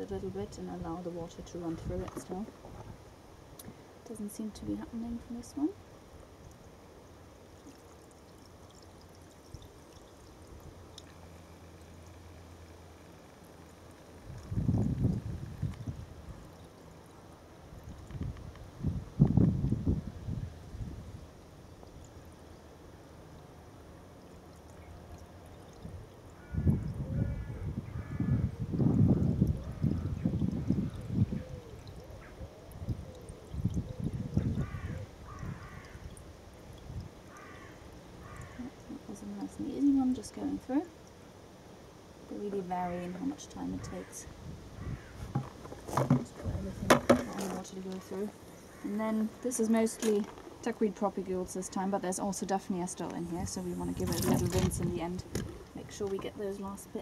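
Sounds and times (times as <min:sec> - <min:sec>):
water pouring into a sieve: 0:06.4 - 0:18.2, 0:53.3 - 0:55.8
bird calling: 0:37.3 - 0:38.8.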